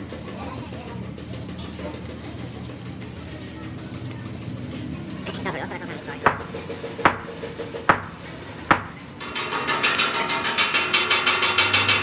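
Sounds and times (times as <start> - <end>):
sharp knocks: 6.2 - 9.1.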